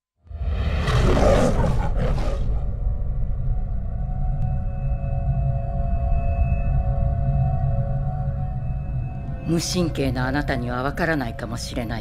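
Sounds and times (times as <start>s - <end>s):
low rumbling film music: 0.2s - 12.0s
lion roar: 0.5s - 2.8s.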